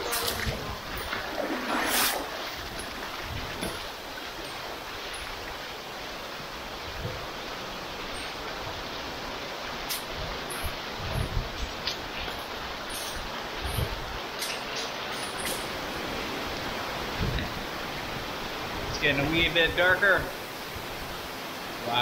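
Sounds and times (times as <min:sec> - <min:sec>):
river water running over stones: 0:00.0 - 0:22.0.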